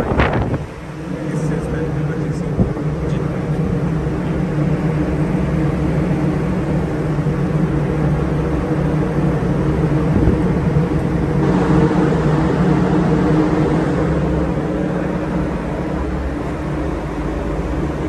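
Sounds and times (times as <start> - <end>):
diesel generator droning: 0.0 - 18.0.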